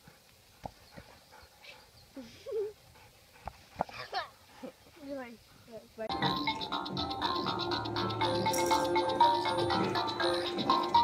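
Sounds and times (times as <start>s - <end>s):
quiet outdoor hiss: 0.0s - 11.0s.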